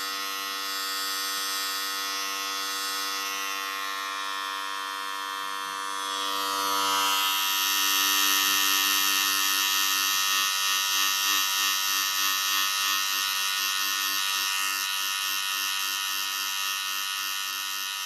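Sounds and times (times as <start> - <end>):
electric hair clipper buzzing: 0.0 - 18.0.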